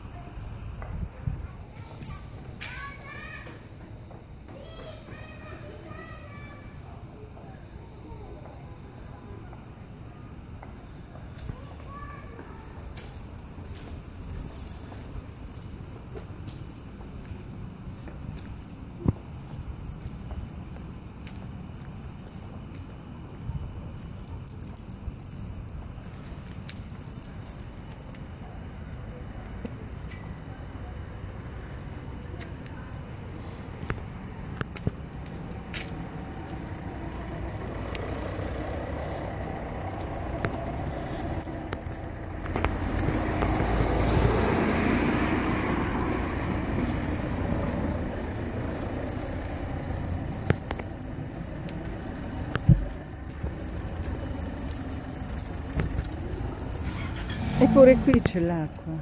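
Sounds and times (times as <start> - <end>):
low street background: 0.0 - 59.0
car passing: 31.2 - 59.0.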